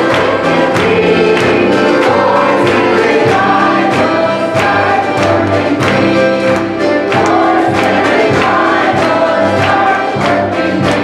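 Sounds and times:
accompaniment with steady beat: 0.0 - 11.0.

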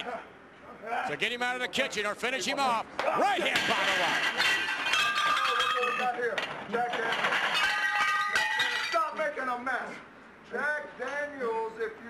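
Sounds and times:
glass bottles clinking: 3.5 - 9.2.

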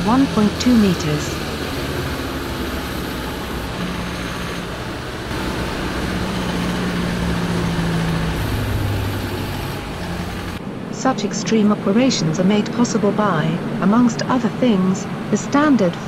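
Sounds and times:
diesel truck engine running: 0.0 - 10.6.

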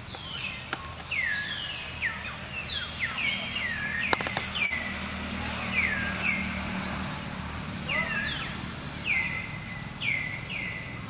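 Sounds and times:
bird whistling calls: 0.1 - 7.2, 7.8 - 11.0
sharp clicks: 4.1 - 4.5.

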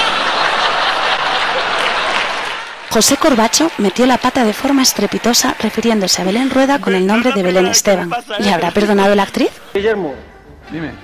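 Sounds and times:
audience applauding: 0.0 - 9.5.

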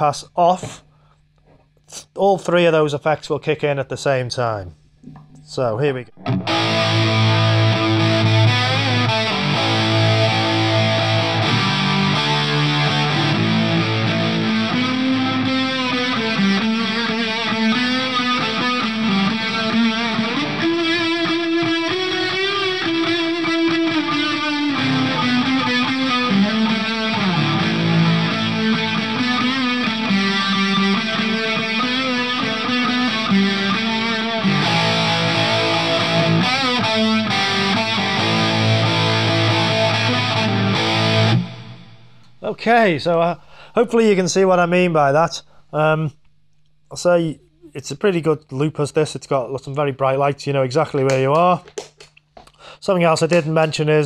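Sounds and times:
electric guitar with effects: 6.1 - 42.4.

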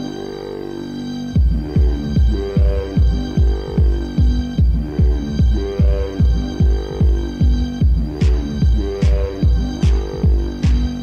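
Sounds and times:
sustained synth chords: 0.0 - 11.0
kick drum with falling pitch: 1.4 - 11.0.

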